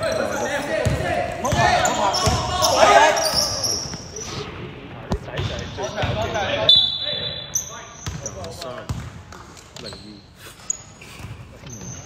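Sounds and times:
voices: 0:00.0 - 0:08.9.

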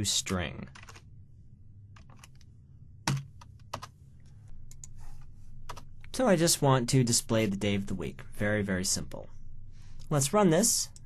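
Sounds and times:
computer keyboard typing: 0:00.7 - 0:01.0, 0:02.0 - 0:02.4, 0:03.1 - 0:03.9.

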